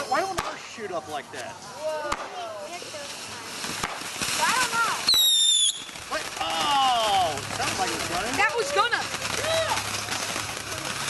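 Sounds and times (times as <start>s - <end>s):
firework pops: 0.0s - 0.8s, 1.4s - 11.0s
whistling firework: 2.0s - 11.0s.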